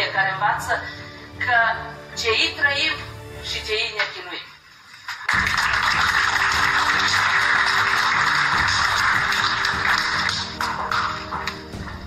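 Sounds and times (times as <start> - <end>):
background music with held notes: 0.0 - 12.0
audience applauding: 4.9 - 12.0.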